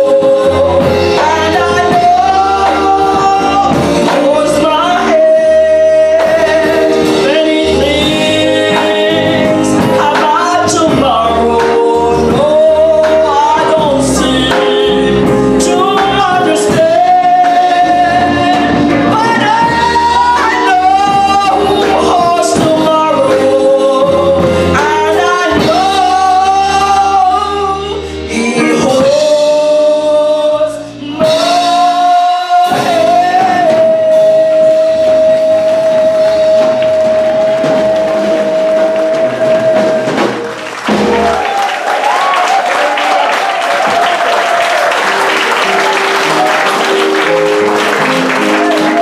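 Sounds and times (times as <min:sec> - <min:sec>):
gospel backing track: 0:00.0 - 0:49.0
audience applauding: 0:35.7 - 0:49.0.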